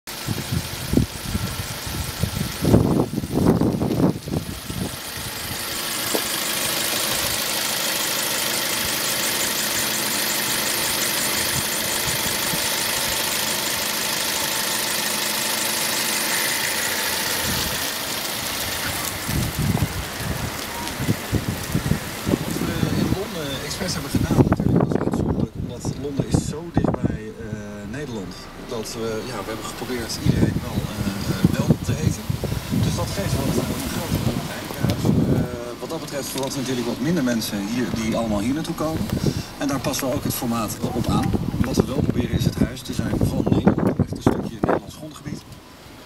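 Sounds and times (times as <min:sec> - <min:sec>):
car engine idling: 0:00.1 - 0:46.0.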